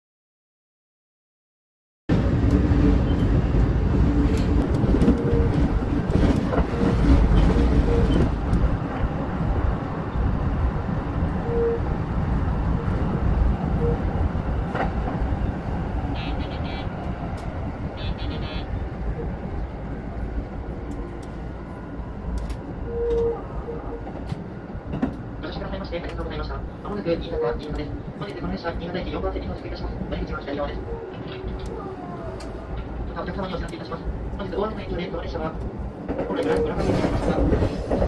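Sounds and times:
train wheels rumbling on track: 0:02.1 - 0:38.0.

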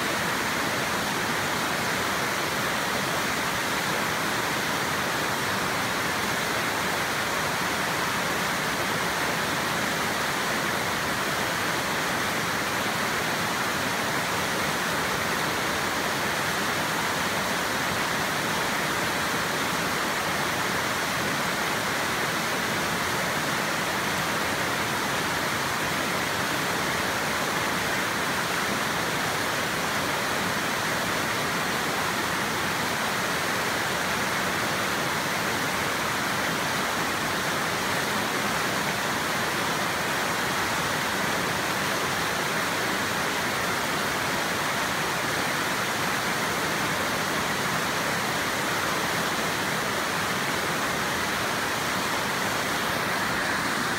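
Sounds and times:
water rushing over rock ledge: 0:00.0 - 0:53.9.

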